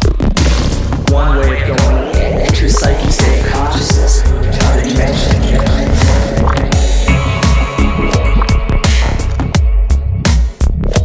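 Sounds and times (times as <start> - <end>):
electronic dub music: 0.0 - 11.0.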